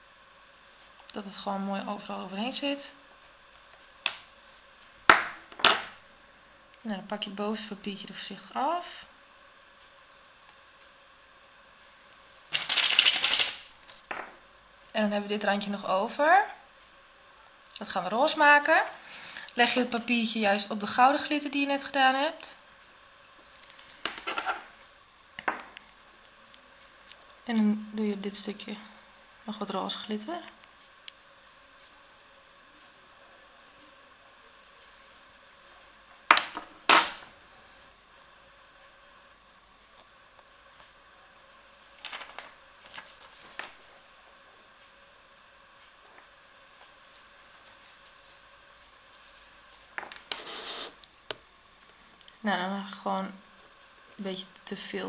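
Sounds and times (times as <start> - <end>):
paper rustling and crackling: 42.0 - 43.8.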